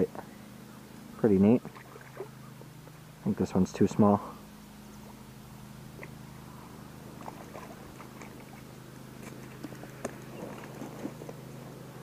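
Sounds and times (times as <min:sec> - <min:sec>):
low steady hum: 0:00.0 - 0:12.0
fishing tackle clicks and rustles: 0:07.2 - 0:11.5.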